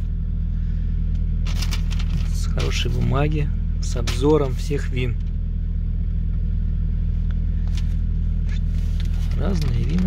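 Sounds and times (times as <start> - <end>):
car engine humming inside cabin: 0.0 - 10.0.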